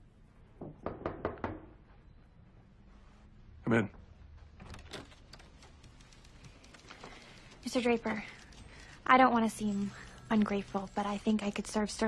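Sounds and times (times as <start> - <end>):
knocks on a door: 0.6 - 1.8.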